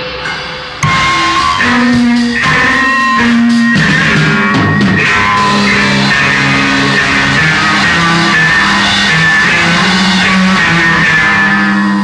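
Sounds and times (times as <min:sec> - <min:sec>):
noise rock guitar held notes: 0:00.0 - 0:12.0.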